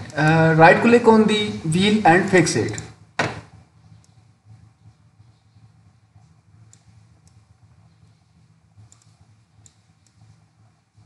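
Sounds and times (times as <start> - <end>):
faint low hum: 0.0 - 11.0
computer mouse clicking: 2.7 - 10.6.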